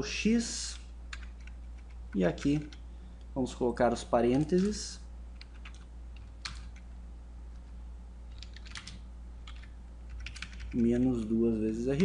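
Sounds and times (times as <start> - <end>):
low hum: 0.0 - 12.0
computer keyboard keystrokes: 1.1 - 2.8, 5.4 - 6.8, 8.3 - 11.1.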